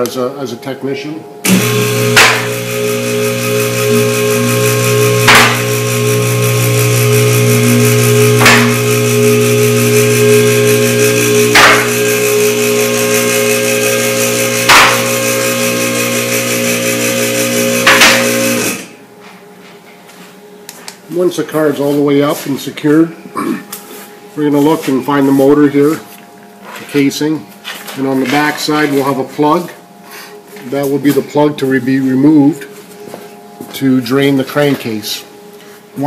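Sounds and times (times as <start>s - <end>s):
hydraulic pump motor humming: 1.4s - 19.0s.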